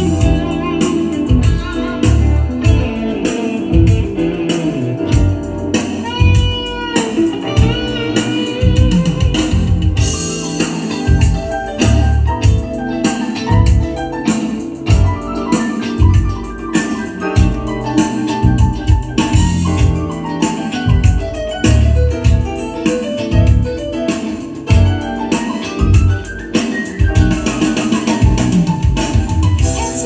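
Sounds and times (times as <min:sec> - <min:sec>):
heavy bass beat: 0:00.0 - 0:24.0, 0:24.6 - 0:26.4, 0:27.0 - 0:30.0
keyboard and organ music: 0:00.0 - 0:30.0.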